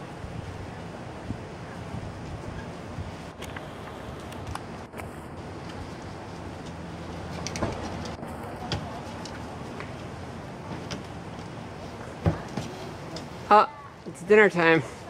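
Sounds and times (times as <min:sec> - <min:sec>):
steady background hum: 0:00.0 - 0:15.0.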